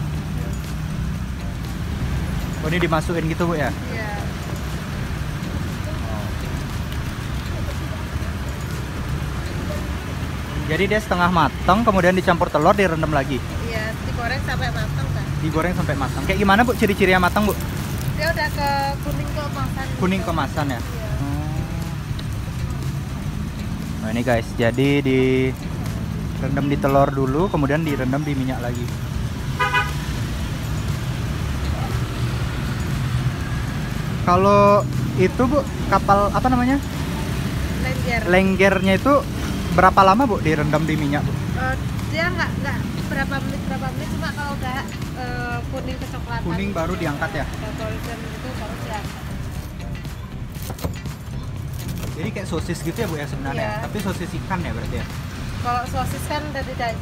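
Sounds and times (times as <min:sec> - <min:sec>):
low road traffic rumble: 0:00.0 - 0:57.0.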